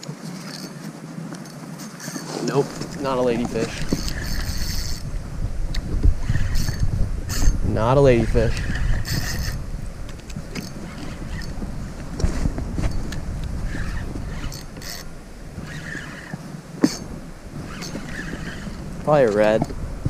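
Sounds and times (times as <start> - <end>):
wind rumble on microphone: 0.0 - 20.0
spinning reel cranking: 1.8 - 5.1, 6.2 - 9.6, 10.5 - 11.6, 13.0 - 19.6.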